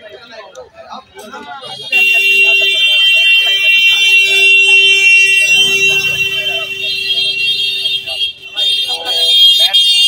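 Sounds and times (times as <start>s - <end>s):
voices: 0.0s - 10.0s
loud horn blast: 1.8s - 9.0s.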